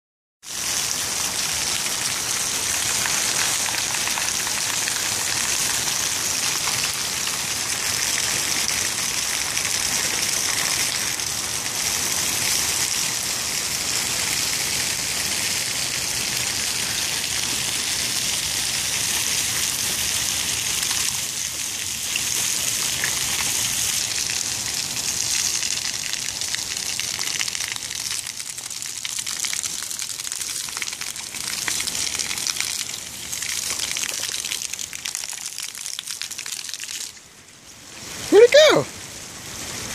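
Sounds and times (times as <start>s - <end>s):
fountain jets spraying on concrete: 0.4s - 39.9s
rain falling: 0.4s - 39.9s.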